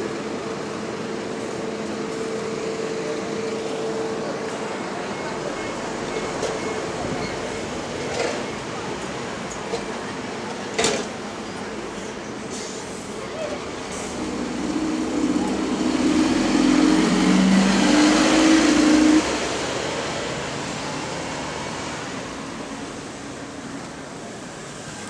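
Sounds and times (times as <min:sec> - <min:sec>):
bus drivetrain whine: 0:00.0 - 0:25.0.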